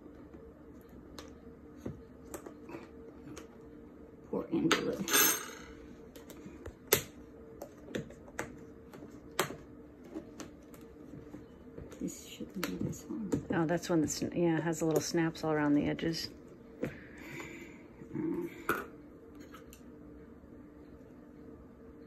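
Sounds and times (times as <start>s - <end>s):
faint low hum: 0.0s - 22.0s.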